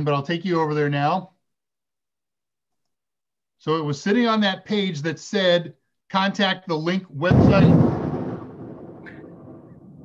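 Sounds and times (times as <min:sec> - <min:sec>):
close thunderclap rumble: 0:07.3 - 0:10.0.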